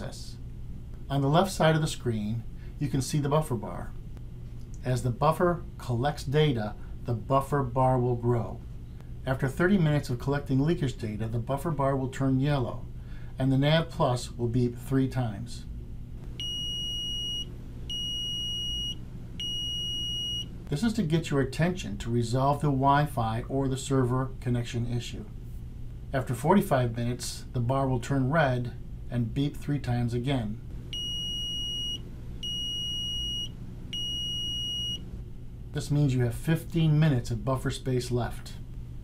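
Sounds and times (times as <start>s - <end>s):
meter beeping: 16.4s - 20.7s, 30.9s - 35.1s.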